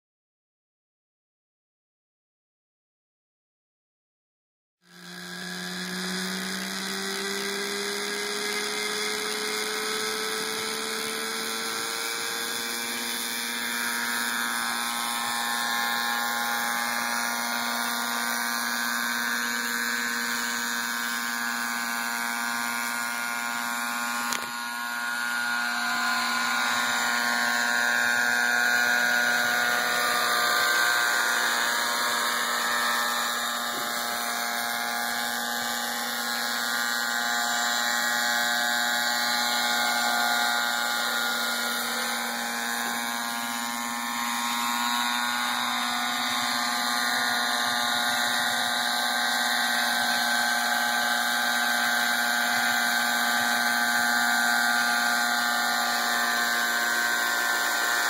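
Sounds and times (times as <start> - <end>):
model helicopter engine whine: 4.8 - 58.0.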